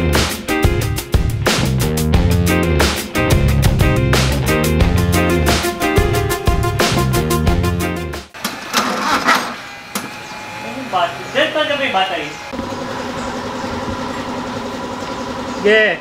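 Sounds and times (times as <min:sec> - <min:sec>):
background music: 0:00.0 - 0:08.3
car engine idling: 0:08.4 - 0:16.0
voices: 0:09.8 - 0:16.0.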